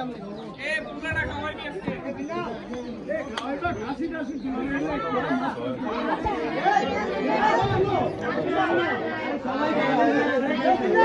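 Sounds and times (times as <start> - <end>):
overlapping group chatter: 0.0 - 11.0.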